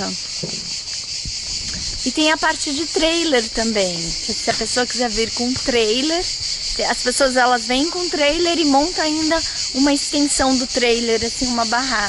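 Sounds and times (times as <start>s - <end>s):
insect chorus chirring: 0.0s - 12.0s.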